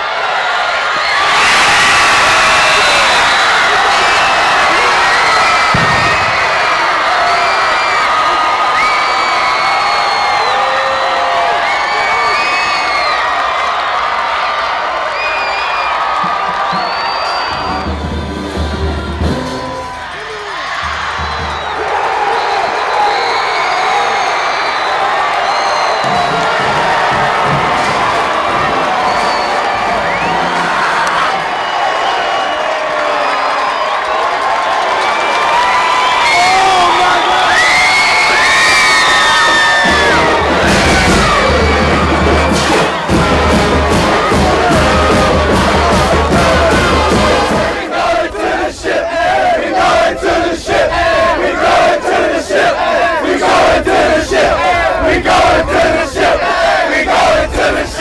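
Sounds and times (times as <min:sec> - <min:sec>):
stadium crowd cheering and shouting: 0:00.0 - 0:58.0
music playing: 0:39.8 - 0:47.8
deep beat: 0:39.8 - 0:47.9.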